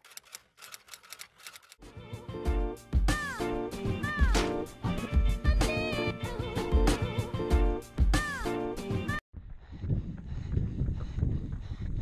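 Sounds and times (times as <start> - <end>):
typewriter key clicks: 0.0 - 1.8
music: 1.8 - 9.2.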